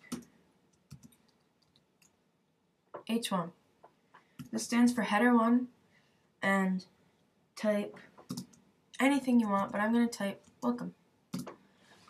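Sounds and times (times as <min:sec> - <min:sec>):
keyboard keys clicking: 0:00.0 - 0:01.8, 0:11.3 - 0:11.6.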